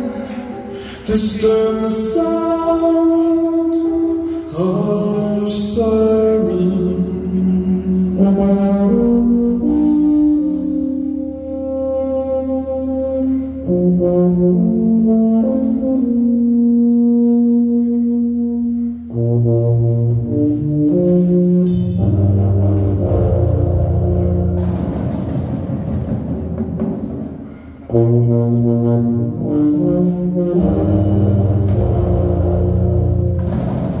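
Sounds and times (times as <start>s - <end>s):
deep low notes: 0.0s - 34.0s
sustained brass-like chords: 0.0s - 34.0s.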